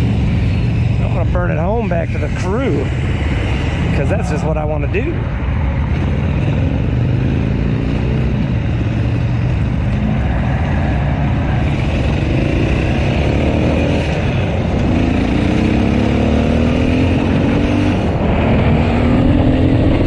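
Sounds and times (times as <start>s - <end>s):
motorcycle engine accelerating: 0.0s - 20.0s.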